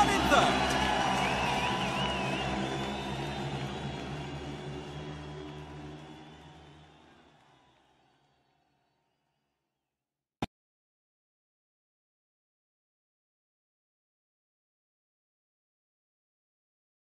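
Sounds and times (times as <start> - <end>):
background music: 0.0 - 8.0.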